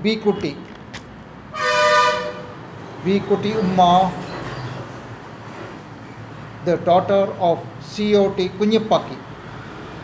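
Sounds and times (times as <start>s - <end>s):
horn blast: 1.5s - 2.6s.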